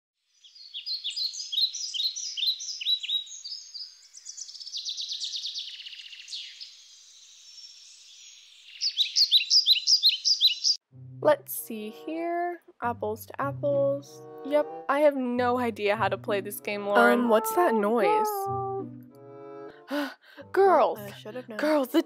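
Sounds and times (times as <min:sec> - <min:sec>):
small birds chirping: 0:00.2 - 0:10.8.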